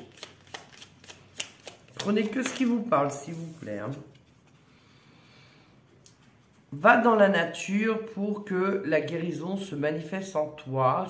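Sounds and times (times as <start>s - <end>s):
tarot cards being shuffled: 0.0s - 4.6s.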